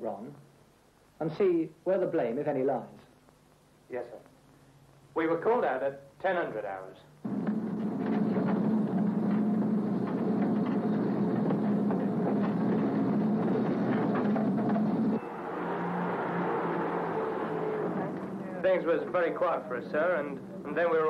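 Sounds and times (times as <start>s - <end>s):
truck engine running: 7.3s - 18.8s
road noise: 7.3s - 20.7s.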